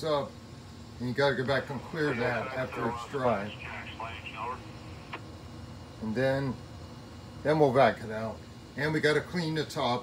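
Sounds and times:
man's voice: 0:01.6 - 0:04.6.

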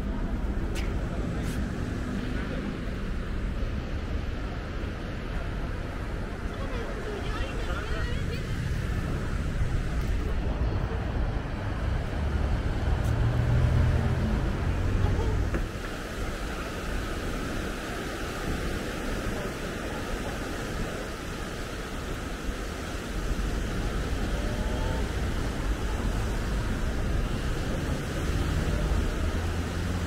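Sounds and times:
city street traffic: 0:00.0 - 0:30.0
vehicle engine rumble: 0:00.0 - 0:30.0.

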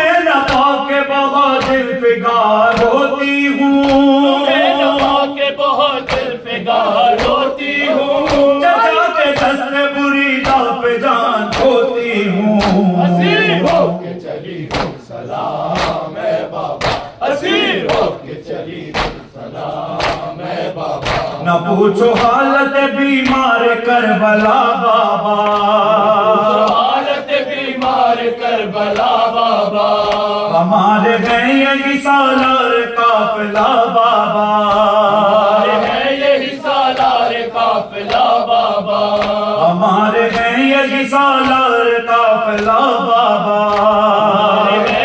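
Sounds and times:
men chanting a lament: 0:00.0 - 0:45.0
chest-beating slaps: 0:01.6 - 0:01.8, 0:03.8 - 0:04.1, 0:04.9 - 0:05.3, 0:06.0 - 0:06.3, 0:07.1 - 0:07.5, 0:08.2 - 0:08.6, 0:10.4 - 0:10.7, 0:11.5 - 0:11.8, 0:12.6 - 0:15.1, 0:15.7 - 0:17.2, 0:17.8 - 0:18.2, 0:18.9 - 0:19.3, 0:20.0 - 0:21.4, 0:38.0 - 0:38.4, 0:39.1 - 0:39.4, 0:40.3 - 0:40.6.

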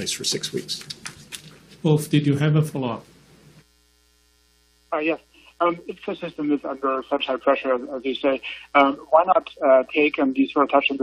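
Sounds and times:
electrical hum with steady tones: 0:00.0 - 0:11.0.

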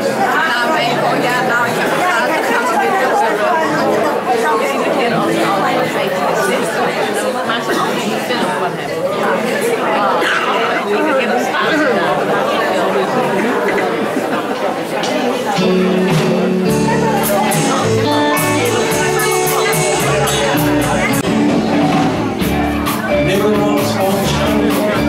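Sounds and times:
crowd chatter in hall: 0:00.0 - 0:25.0.

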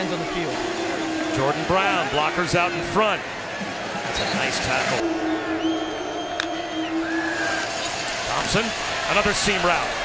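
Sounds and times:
stadium crowd noise: 0:00.0 - 0:10.0
steady held tone: 0:05.0 - 0:08.3.

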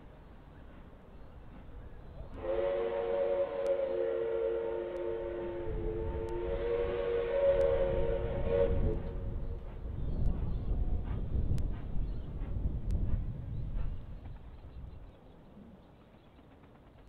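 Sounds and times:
steam locomotive chime whistle: 0:02.4 - 0:09.5.

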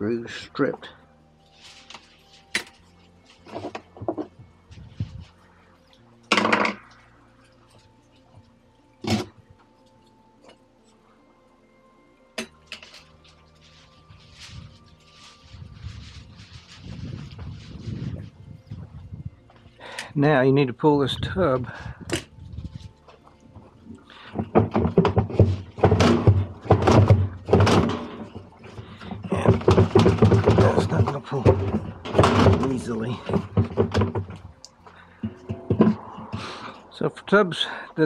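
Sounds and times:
low rustle of handling: 0:01.4 - 0:06.1, 0:12.7 - 0:19.8.

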